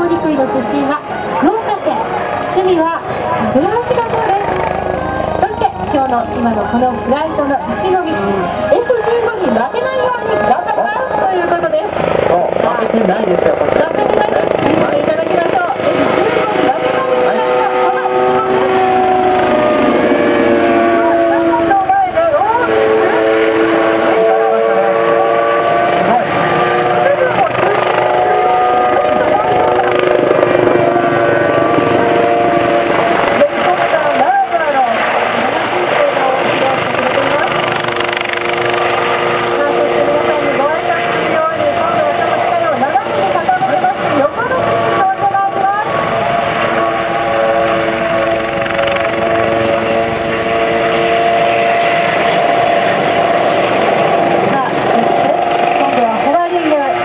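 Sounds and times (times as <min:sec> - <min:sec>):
helicopter turbine and rotor whine: 0:00.0 - 0:57.0.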